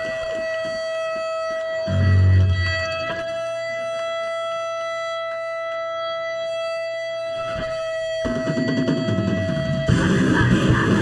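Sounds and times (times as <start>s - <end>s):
electric guitar feedback tone: 0.0s - 11.0s
heavy low instrument: 1.6s - 3.2s
punk band playing: 8.3s - 11.0s.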